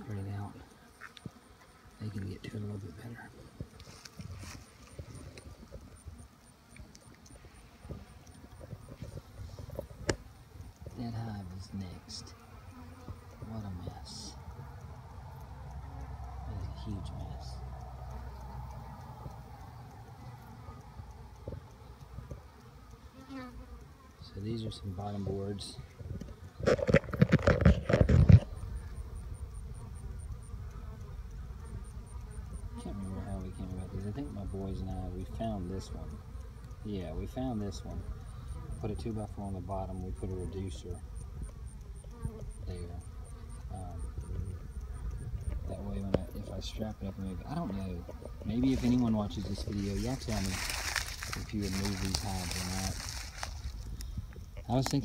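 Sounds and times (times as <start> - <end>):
honey bees buzzing: 0.0 - 55.0
bee flying past: 0.1 - 55.0
loud rustling and crackling: 48.6 - 55.0.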